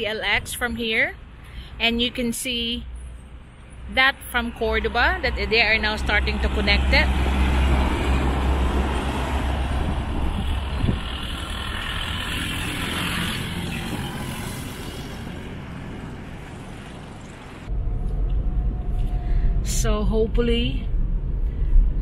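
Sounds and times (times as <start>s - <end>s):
truck passing: 3.0s - 19.8s.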